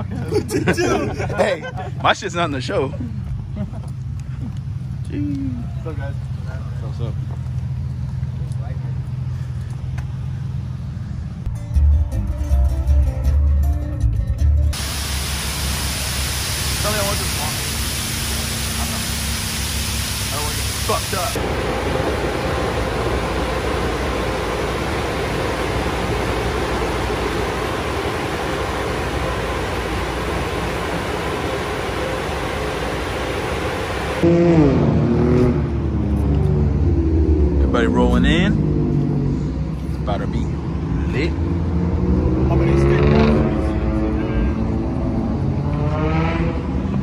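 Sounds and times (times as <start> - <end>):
car engine idling: 14.1 - 34.3
air dryer blowers rushing: 14.8 - 34.7.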